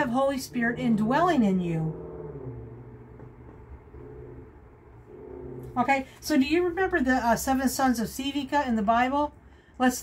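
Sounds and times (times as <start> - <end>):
low machine hum: 0.0 - 7.3.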